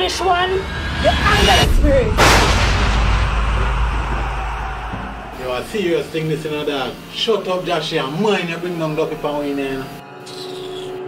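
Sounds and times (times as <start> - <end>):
deep rumble: 0.0 - 6.0
loud boom with crackle: 1.0 - 5.9.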